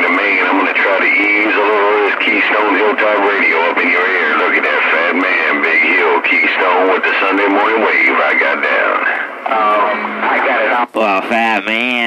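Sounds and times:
man's voice over radio: 0.0 - 12.0.

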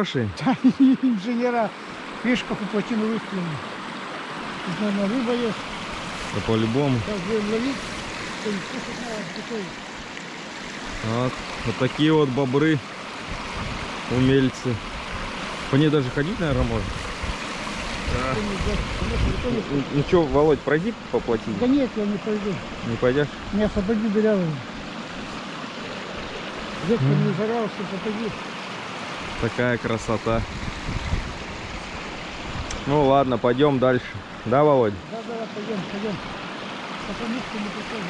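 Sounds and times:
man talking: 0.0 - 3.6, 4.7 - 5.6, 6.3 - 7.8, 8.4 - 9.8, 11.0 - 12.8, 14.1 - 14.8, 15.7 - 17.0, 18.1 - 24.7, 26.8 - 28.4, 29.4 - 30.4, 32.7 - 36.3, 37.0 - 38.0
water rushing over a dam: 0.0 - 38.0.

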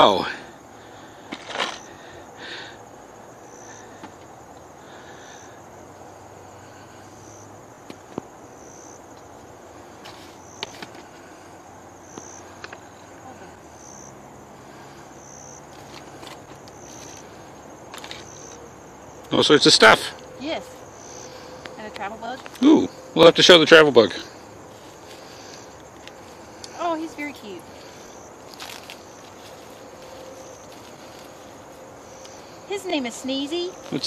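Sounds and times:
faint high insect hum: 0.0 - 34.0
insect chirping: 0.0 - 34.0.

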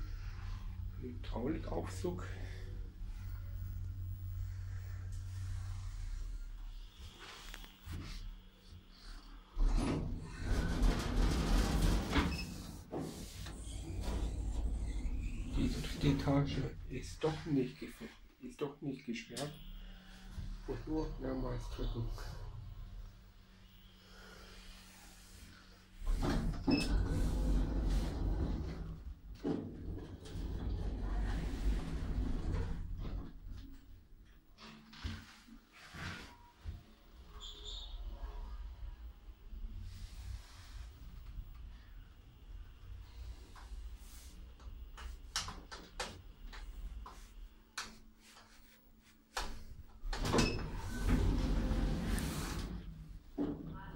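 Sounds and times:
lift doors rumbling clatter: 9.6 - 17.2, 26.1 - 33.8, 50.1 - 53.8.

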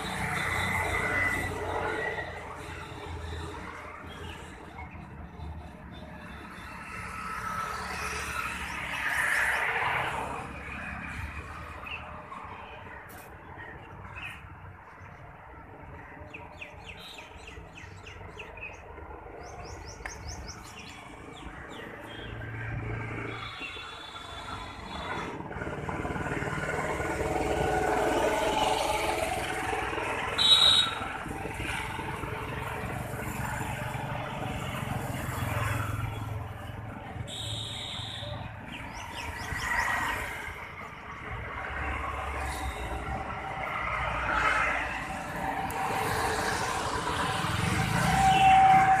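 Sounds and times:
passing traffic: 0.0 - 49.0
birds chirping: 13.5 - 22.6.

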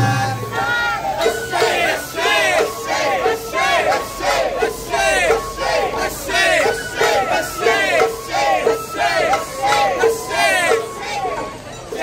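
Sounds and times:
crowd shouting rhythmic chant: 0.0 - 12.0.

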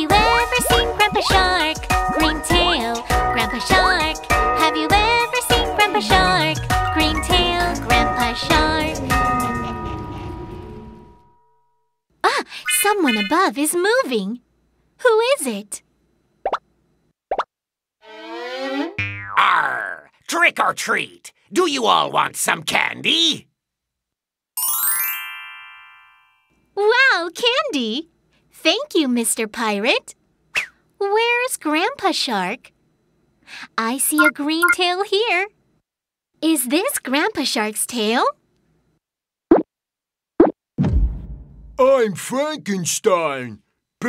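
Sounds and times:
cartoon plop effects: 16.4 - 16.6, 34.2 - 34.8
low whooshing boom: 40.8 - 41.8.

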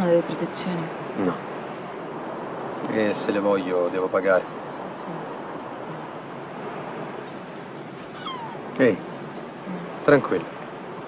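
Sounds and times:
wind: 0.0 - 11.0
sea surf: 0.9 - 11.0
short pitched cries: 8.0 - 8.7.

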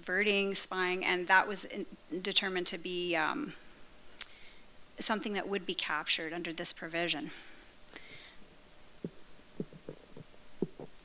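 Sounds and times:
microphone stem handling knocks: 9.0 - 10.9.

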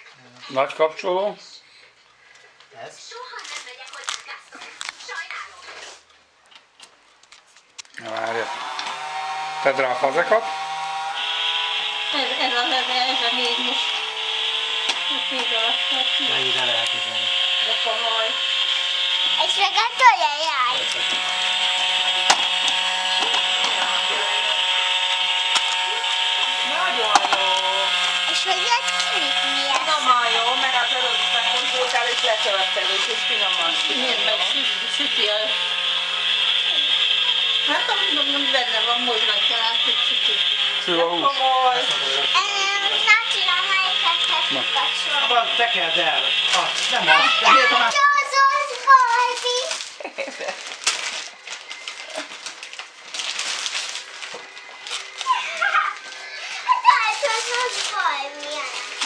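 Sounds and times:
toy stove electronic hissing: 8.2 - 49.9, 53.8 - 59.0.

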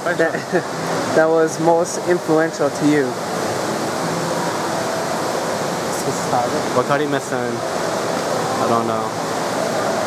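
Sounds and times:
rushing background noise: 0.0 - 10.0.

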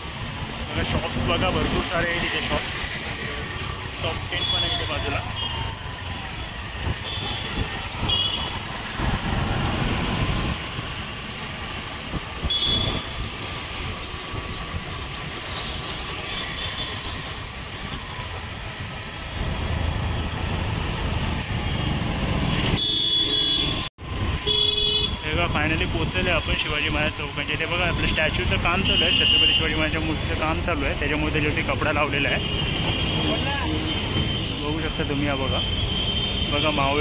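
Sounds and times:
vehicles rumbling past: 0.0 - 12.4.

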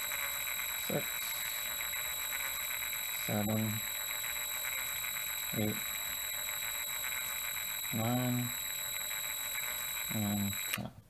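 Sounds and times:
electric drill whining: 0.0 - 10.8.

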